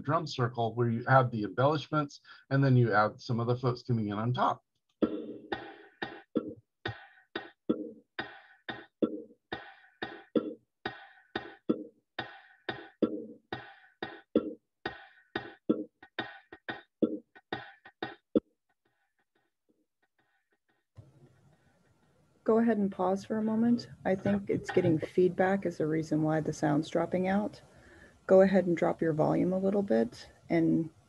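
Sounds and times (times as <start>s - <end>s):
bongo rhythm: 5.0s - 18.5s, 24.1s - 25.2s.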